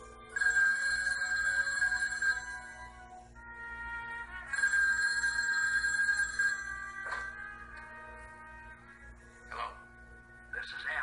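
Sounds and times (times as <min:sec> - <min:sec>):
telephone ringing: 0:00.0 - 0:03.2, 0:04.4 - 0:07.4.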